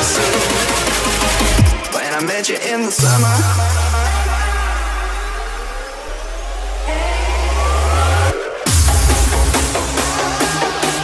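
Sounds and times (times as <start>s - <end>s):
sped-up hardstyle dance music: 0.0s - 11.0s.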